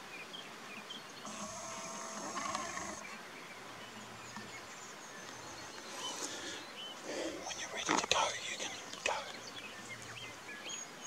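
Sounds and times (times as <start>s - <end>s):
deer stag roaring: 1.3s - 3.0s.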